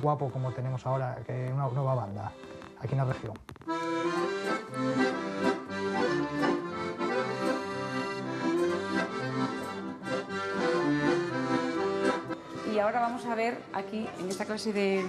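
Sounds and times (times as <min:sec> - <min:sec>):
piano accordions playing: 0:00.0 - 0:15.0.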